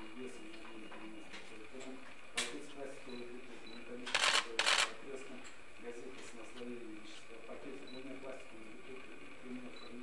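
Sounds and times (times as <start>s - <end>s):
camera shutters clicking: 4.1s - 5.0s.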